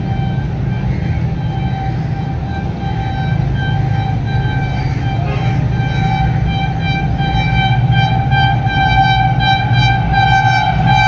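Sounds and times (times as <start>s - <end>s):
locomotive horn tooting: 0.0s - 11.0s
steady low rumble: 0.0s - 11.0s.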